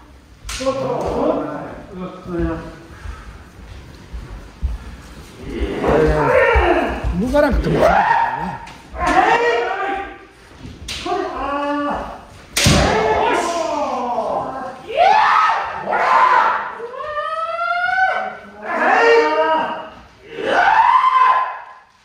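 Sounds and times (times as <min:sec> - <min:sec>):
people shouting drawn-out cries: 0:05.5 - 0:10.3, 0:12.8 - 0:21.9.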